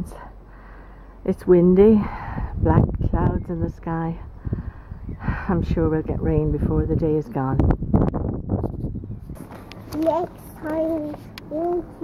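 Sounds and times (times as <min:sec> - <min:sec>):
wind rumbling on microphone: 0:01.6 - 0:10.2.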